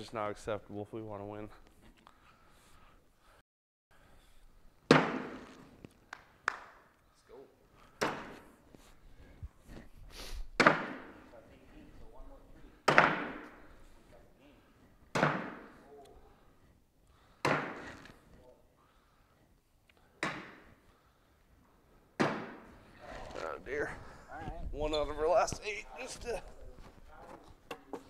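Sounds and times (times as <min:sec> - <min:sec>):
bean bags thudding on wooden board: 0:04.9 - 0:05.6, 0:17.4 - 0:18.0.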